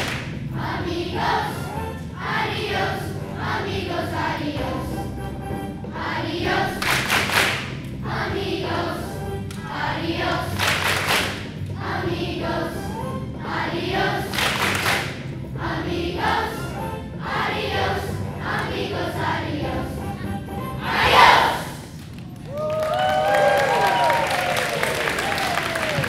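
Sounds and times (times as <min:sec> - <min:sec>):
accompaniment music: 0:00.0 - 0:21.8
children singing: 0:00.6 - 0:05.0, 0:06.0 - 0:06.8, 0:08.1 - 0:10.6, 0:15.7 - 0:20.0, 0:20.7 - 0:21.7.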